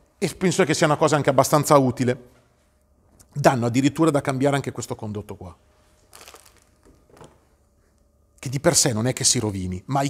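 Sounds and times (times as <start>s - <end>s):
plastic bag crinkling: 6.0s - 7.3s.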